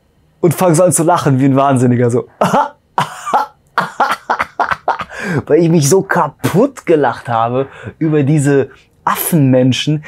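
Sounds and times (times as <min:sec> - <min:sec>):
man laughing: 0:02.4 - 0:05.6.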